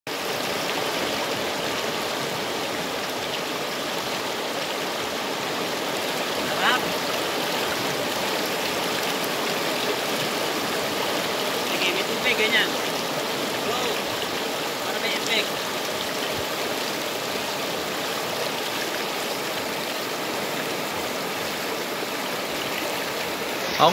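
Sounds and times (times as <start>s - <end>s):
river rushing through rapids: 0.1s - 23.9s.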